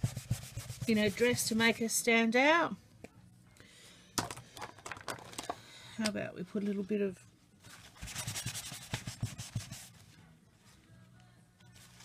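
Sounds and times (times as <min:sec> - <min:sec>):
crayon scrubbing on paper: 0:00.0 - 0:01.9, 0:08.0 - 0:10.0.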